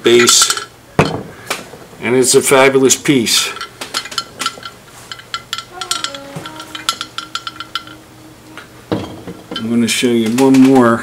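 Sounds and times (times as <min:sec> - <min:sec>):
porcelain clinking: 0:03.3 - 0:10.7
ceramic vase knocking: 0:08.9 - 0:09.8.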